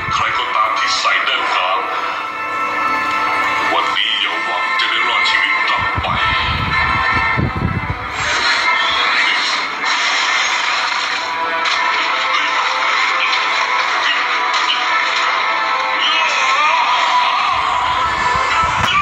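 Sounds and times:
dramatic film music: 0.0 - 19.0.

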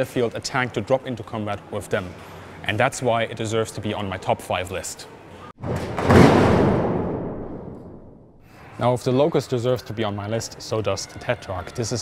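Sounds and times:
deep boom hit: 6.0 - 8.4.

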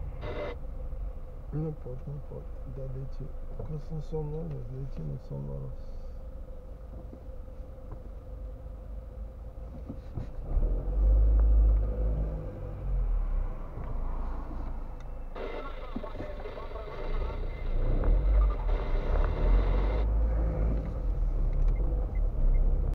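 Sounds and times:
car engine and road rumble: 0.0 - 22.9.

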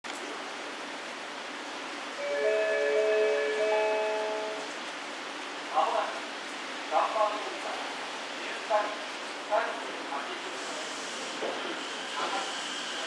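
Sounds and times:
rain hissing: 0.1 - 13.0.

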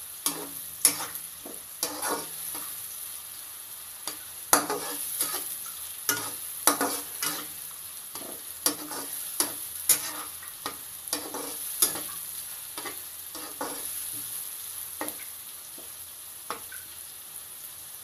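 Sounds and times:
onions sizzling in a pan: 0.0 - 18.0
spatula scraping a pan: 0.2 - 2.8, 4.1 - 12.2, 12.8 - 14.3.

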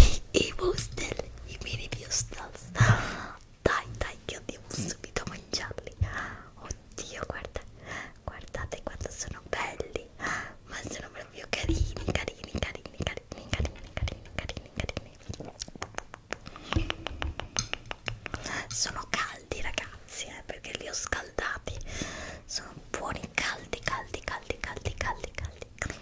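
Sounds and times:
woman whispering: 0.0 - 2.8, 3.6 - 15.8, 18.4 - 21.9, 22.5 - 26.0.

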